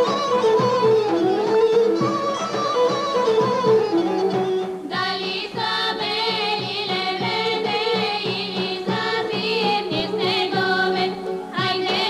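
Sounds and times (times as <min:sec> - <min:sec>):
bagpipe: 0:00.0 - 0:12.0
plucked lute: 0:00.0 - 0:12.0
women singing: 0:04.9 - 0:12.0.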